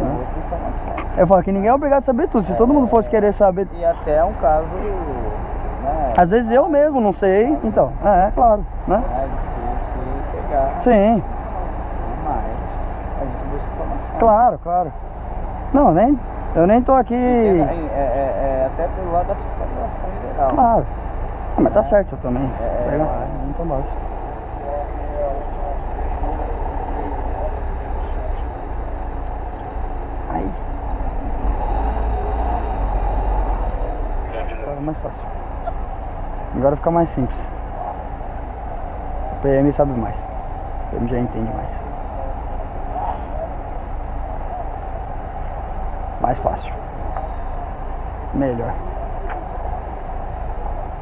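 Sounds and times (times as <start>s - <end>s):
faint voices talking: 0.0s - 51.0s
street noise: 0.0s - 51.0s
vehicle engine idling: 0.0s - 51.0s.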